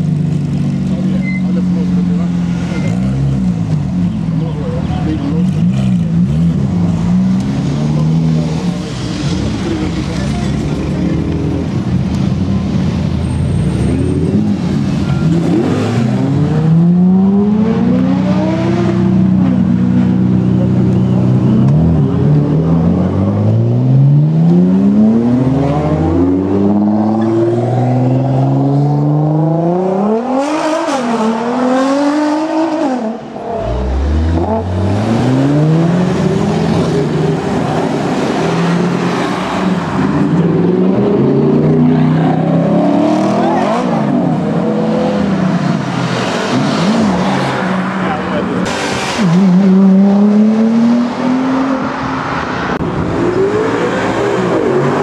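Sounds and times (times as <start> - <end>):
sports car engines revving: 0.0 - 55.0.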